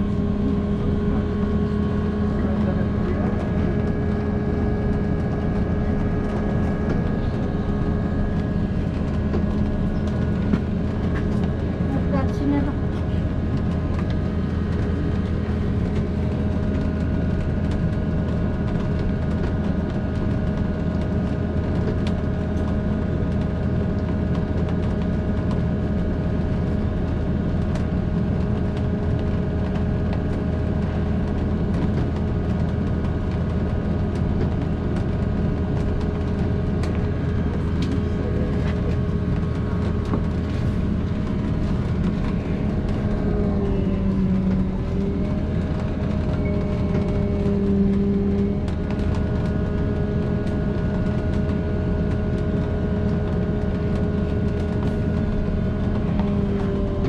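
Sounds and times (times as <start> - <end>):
steady whining tones: 0.0 - 24.4, 25.0 - 57.0
vehicle drivetrain hum: 0.0 - 57.0.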